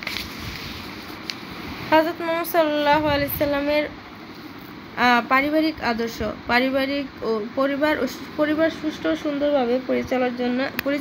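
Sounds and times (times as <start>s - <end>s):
paper handling: 0.0s - 1.5s.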